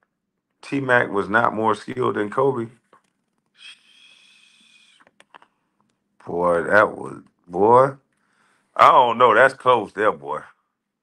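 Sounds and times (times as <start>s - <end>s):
nose breathing with whistle: 3.6s - 5.0s.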